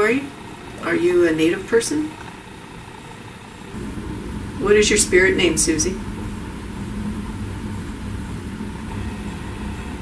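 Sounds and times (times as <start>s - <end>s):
fan running with hiss: 0.0s - 10.0s.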